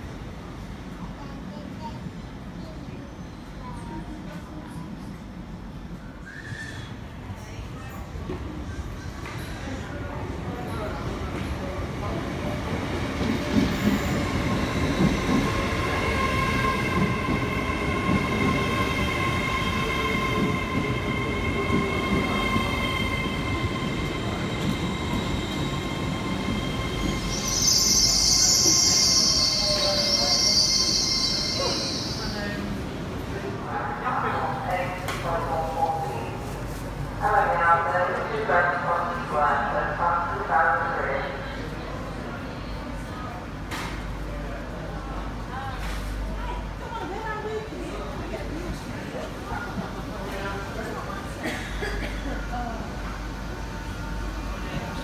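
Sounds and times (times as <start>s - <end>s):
announcement over loudspeakers: 33.5s - 36.4s, 37.2s - 41.6s.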